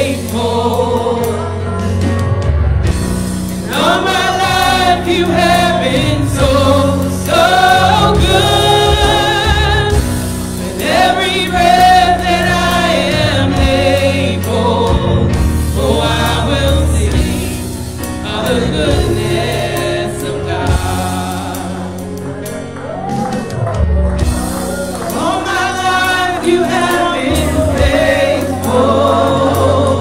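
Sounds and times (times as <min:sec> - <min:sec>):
women singing gospel: 0:00.0 - 0:02.1, 0:03.5 - 0:22.6, 0:24.9 - 0:30.0
drums: 0:00.0 - 0:30.0
keyboard: 0:00.0 - 0:30.0.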